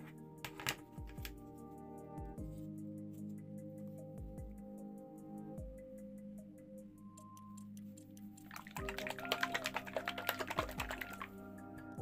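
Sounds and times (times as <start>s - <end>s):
plastic bottle shaken rattling: 8.5s - 11.4s.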